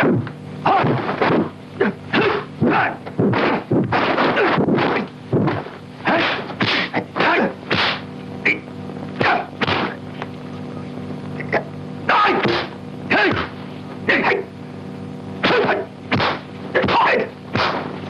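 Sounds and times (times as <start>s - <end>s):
steady low hum: 0.0s - 18.0s
dubbed punch and block hits: 0.7s - 1.5s, 3.2s - 6.9s, 7.7s - 8.1s, 9.2s - 10.0s, 12.4s - 12.7s, 15.4s - 18.0s.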